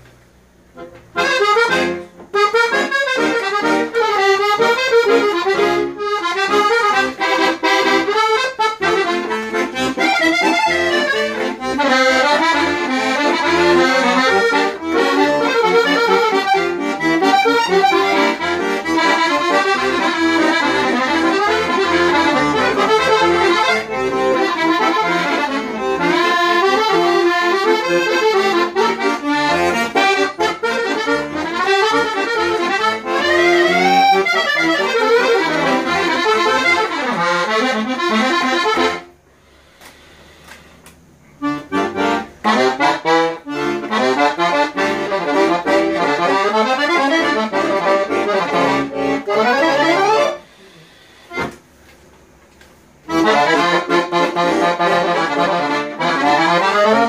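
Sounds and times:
accordion playing fast melody: 0.6s - 40.6s, 41.4s - 51.6s, 52.9s - 57.0s.

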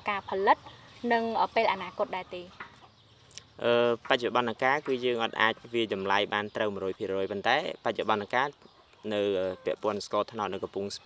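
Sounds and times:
chicken clucking: 0.5s - 11.0s.

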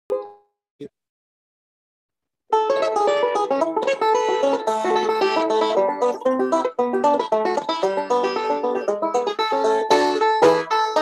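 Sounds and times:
plucked banjo note: 0.1s - 0.4s, 2.5s - 11.0s.

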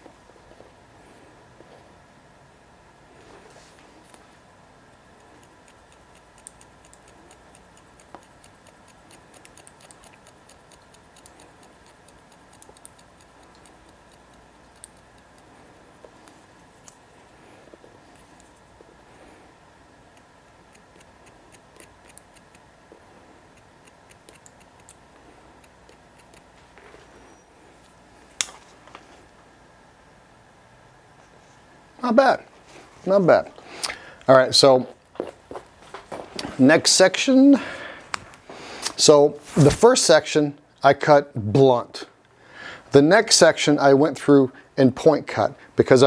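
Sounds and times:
scissors snipping hair: 5.0s - 18.8s, 20.0s - 22.7s, 23.4s - 27.1s.

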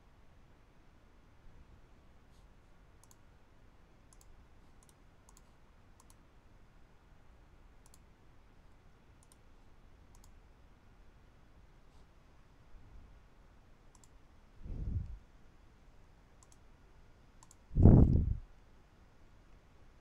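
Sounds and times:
faint room hiss: 0.0s - 20.0s.

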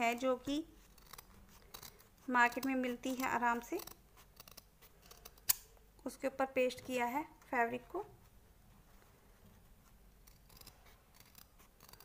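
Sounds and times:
scissors snipping fabric: 0.0s - 5.6s, 10.2s - 12.0s.

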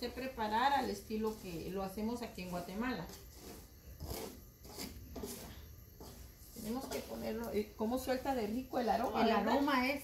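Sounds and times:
wooden spatula scraping rice in pan: 0.0s - 8.6s.

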